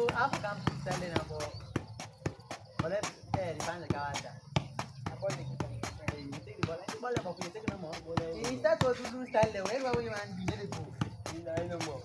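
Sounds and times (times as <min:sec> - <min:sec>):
shoe tapping football: 0:00.0 - 0:12.0.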